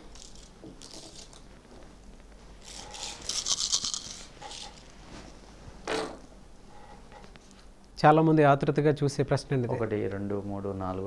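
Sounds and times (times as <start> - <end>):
shells rattling in hands: 2.8 - 4.8.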